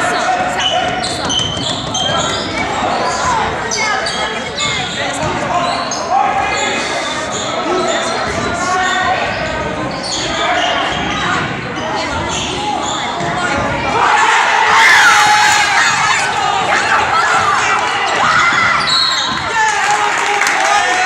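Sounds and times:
sneakers squeaking on court: 0:00.2 - 0:06.1, 0:06.8 - 0:13.7, 0:15.9 - 0:19.5
basketball bouncing: 0:00.8 - 0:02.4
people calling out: 0:12.0 - 0:21.0.

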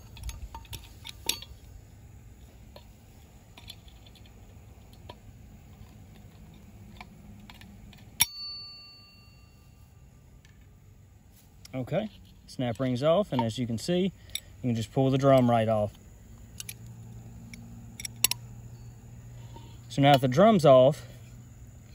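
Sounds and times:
snap ring springing free: 0:00.0 - 0:01.7, 0:06.5 - 0:09.6, 0:16.4 - 0:20.6
brief metallic ringing: 0:08.2 - 0:09.8
light metallic clicks: 0:11.6 - 0:20.7.

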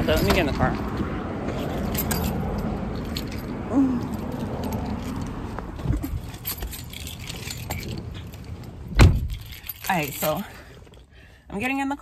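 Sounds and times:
keys jangling: 0:01.5 - 0:11.1
car door shutting: 0:08.9 - 0:09.4
thump: 0:09.0 - 0:09.4.

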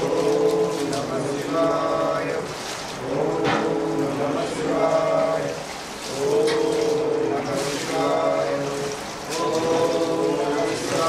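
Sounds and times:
chanting in long held notes: 0:00.0 - 0:11.0
water pouring over stone: 0:00.0 - 0:11.0.

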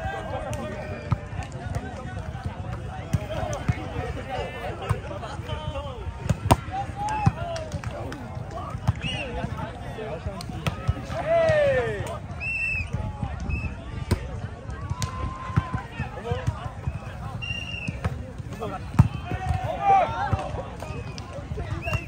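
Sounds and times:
players calling and shouting: 0:00.0 - 0:22.0.

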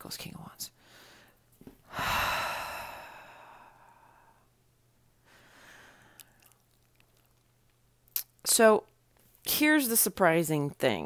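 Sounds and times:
woman sighing: 0:01.9 - 0:04.4.

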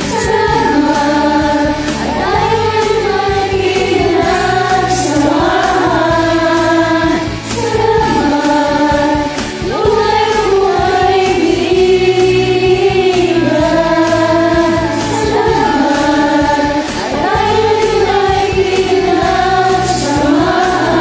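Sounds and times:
group singing: 0:00.0 - 0:21.0
karaoke backing track: 0:00.0 - 0:21.0.

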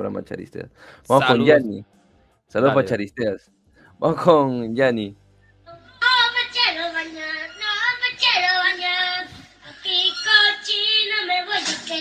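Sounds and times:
short breaths: 0:00.7 - 0:01.1
high-pitched voice singing: 0:05.9 - 0:12.0.

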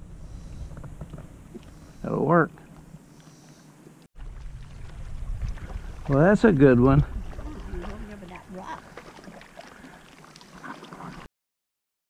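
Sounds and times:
wind rumbling on microphone: 0:00.0 - 0:03.1, 0:04.2 - 0:09.4.

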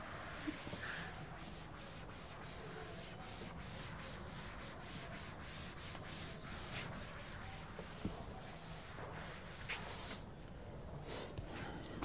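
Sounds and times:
duster rubbing on blackboard: 0:00.0 - 0:10.3.

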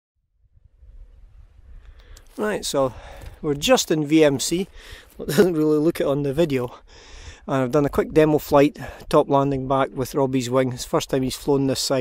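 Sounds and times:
wind buffeting microphone: 0:00.3 - 0:10.2.

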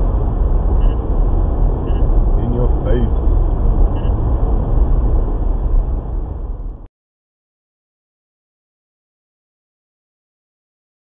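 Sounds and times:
road and engine rumble in car: 0:00.0 - 0:06.9.

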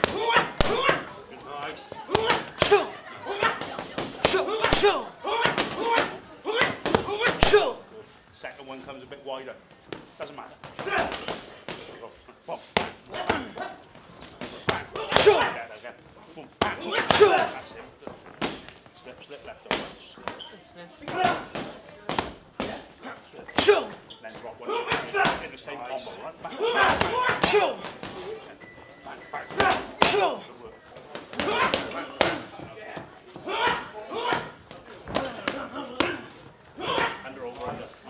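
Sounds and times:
boxing gloves hitting mitts: 0:00.0 - 0:01.1, 0:02.1 - 0:07.8, 0:09.9 - 0:12.0, 0:12.7 - 0:15.6, 0:16.6 - 0:18.8, 0:19.6 - 0:20.4, 0:21.0 - 0:22.9, 0:23.5 - 0:25.6, 0:26.6 - 0:28.4, 0:29.4 - 0:30.4, 0:31.0 - 0:37.9.

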